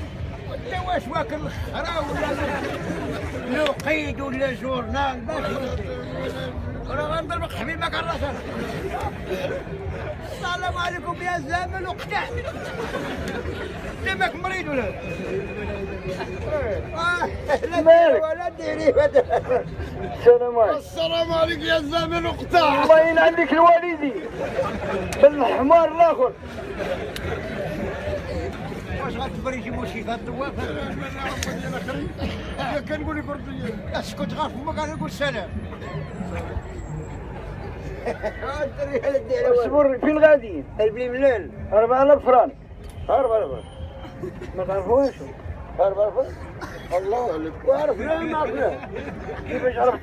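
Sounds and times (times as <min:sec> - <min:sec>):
crowd chatter: 0:00.0 - 0:50.0
men talking: 0:00.0 - 0:50.0
man speaking: 0:20.0 - 0:24.3.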